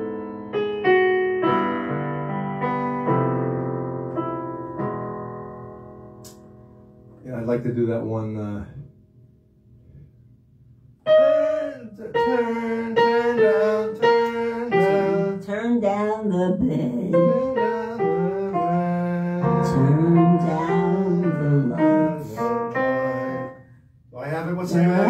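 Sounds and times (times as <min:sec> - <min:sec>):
piano melody: 0:00.0 - 0:10.0, 0:10.9 - 0:25.0
person singing without words: 0:11.1 - 0:23.6, 0:24.3 - 0:25.0.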